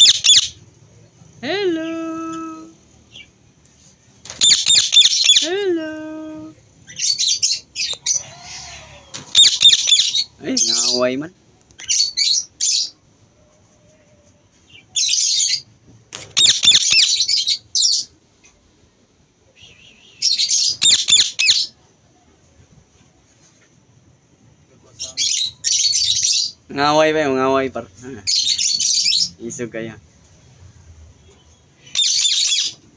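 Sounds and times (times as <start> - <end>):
parakeet squawking: 0.0 - 0.6, 4.4 - 5.5, 6.9 - 11.0, 16.3 - 18.1, 20.2 - 21.7, 31.9 - 32.8.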